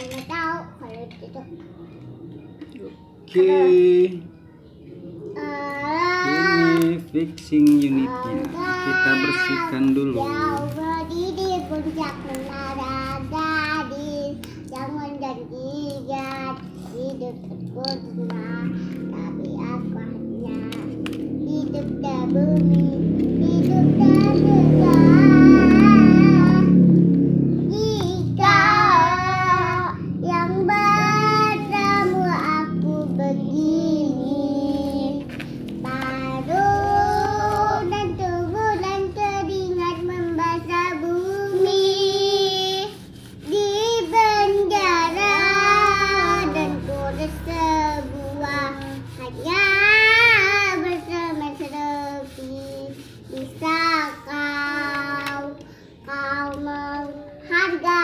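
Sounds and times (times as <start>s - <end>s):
child singing: 0.0s - 1.9s, 5.2s - 58.0s
short breaths: 55.6s - 56.0s.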